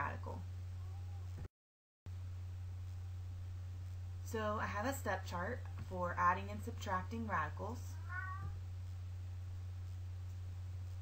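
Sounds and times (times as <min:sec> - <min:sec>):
steady low hum: 0:00.0 - 0:01.5, 0:02.1 - 0:11.0.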